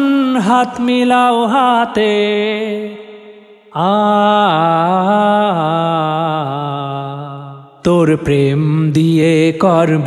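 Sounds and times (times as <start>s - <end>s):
man singing: 0.0s - 10.0s.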